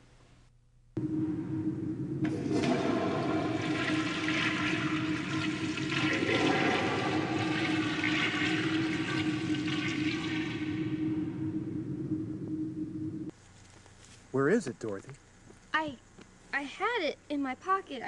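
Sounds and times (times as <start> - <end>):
low steady tone: 1.0 - 13.3
water rushing: 2.4 - 10.9.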